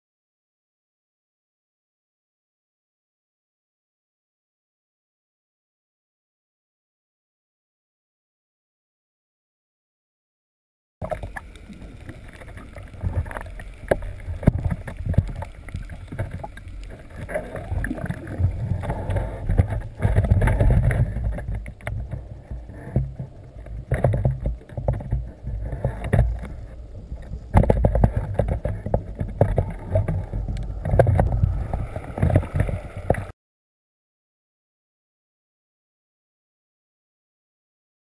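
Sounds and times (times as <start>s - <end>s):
underwater clicks and pops: 11.0s - 33.3s
underwater rumble of moving water: 11.0s - 33.3s.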